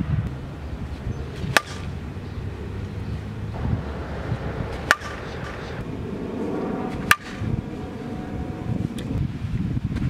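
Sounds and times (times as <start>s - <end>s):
wind rumble on microphone: 0.0s - 10.0s
bat hitting ball: 1.4s - 3.4s, 4.3s - 6.2s, 6.9s - 7.8s.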